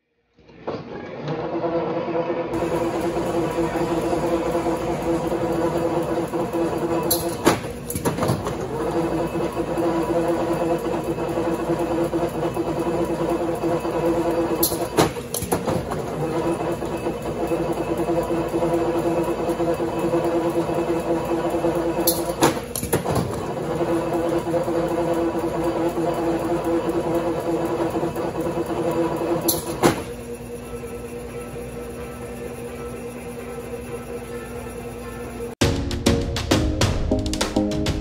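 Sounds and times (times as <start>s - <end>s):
coil winding machine humming: 1.9s - 35.6s.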